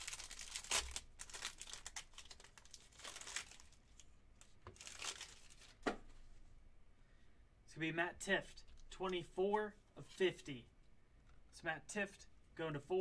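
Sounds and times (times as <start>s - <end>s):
foil wrapper tearing and crinkling: 0.0s - 3.8s, 4.8s - 5.7s.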